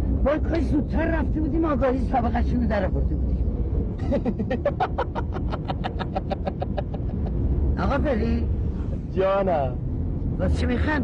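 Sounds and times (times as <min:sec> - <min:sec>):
person laughing: 0:04.0 - 0:07.4.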